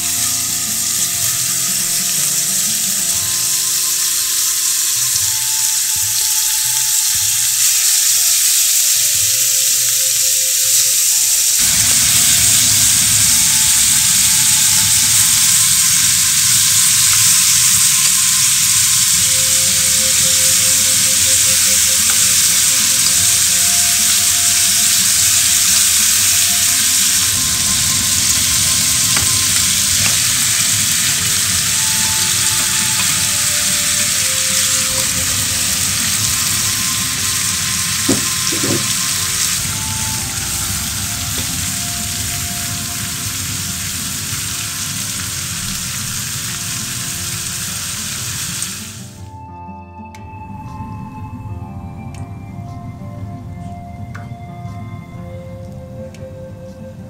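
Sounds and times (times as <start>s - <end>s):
meat sizzling in oil: 0.0s - 49.2s.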